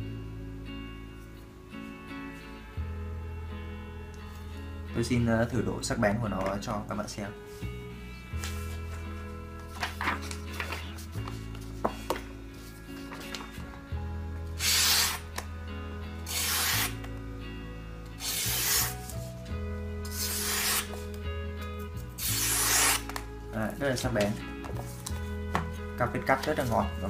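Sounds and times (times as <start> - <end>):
background music: 0.0 - 27.0
blade slicing paper: 14.6 - 15.5, 16.2 - 17.1, 18.2 - 19.2, 20.0 - 21.1, 22.2 - 23.3.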